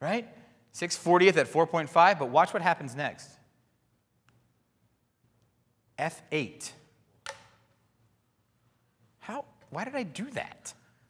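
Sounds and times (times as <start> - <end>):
sharp click: 7.2 - 7.6.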